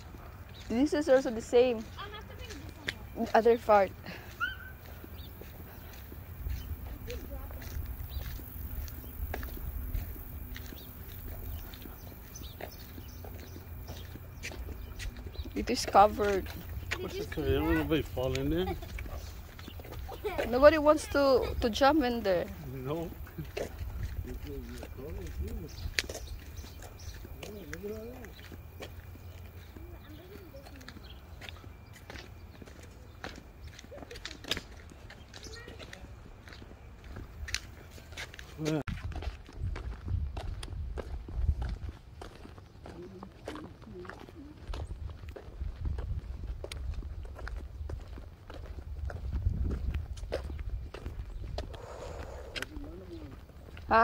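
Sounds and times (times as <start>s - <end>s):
faint voices: 0.0s - 37.1s, 51.7s - 54.0s
footsteps on dirt and concrete: 0.0s - 54.0s.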